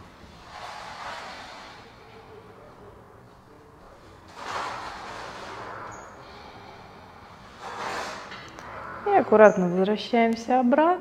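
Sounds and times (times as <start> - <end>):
woman breathing slowly: 5.9 - 9.4.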